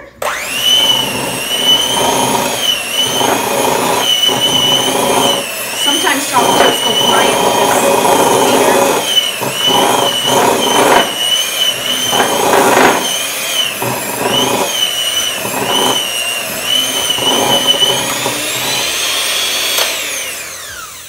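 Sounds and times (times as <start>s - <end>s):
electric mixer motor whine: 0.0s - 21.0s
beaters scraping dough: 0.3s - 20.5s.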